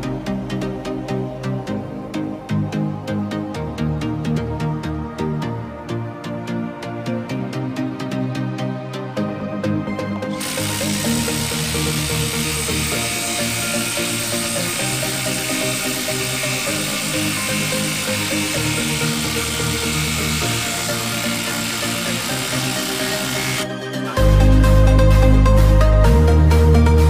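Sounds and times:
impact driver driving screw into wood: 10.3 - 23.7
electronic music: 10.3 - 27.0.

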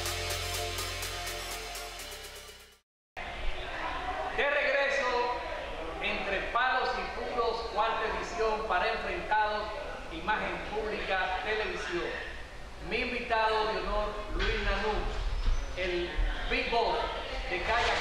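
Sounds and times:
man speaking: 6.0 - 15.1.

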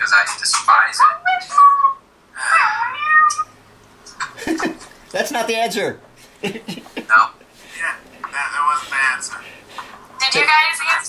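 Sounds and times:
cat meowing: 1.0 - 3.5.

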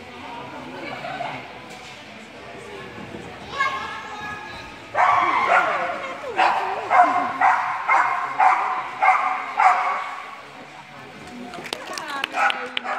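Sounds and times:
dog barking: 6.4 - 10.2.

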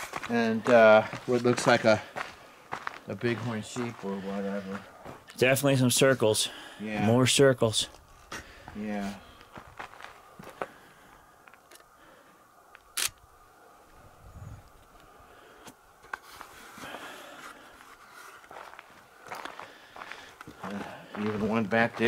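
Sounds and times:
footsteps on rocky ground: 0.0 - 6.2, 7.9 - 11.8, 16.1 - 22.0.

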